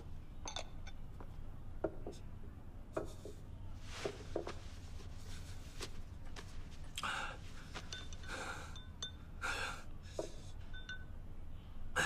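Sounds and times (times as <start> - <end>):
man gasping breaths: 7.0 - 8.8, 9.4 - 10.4.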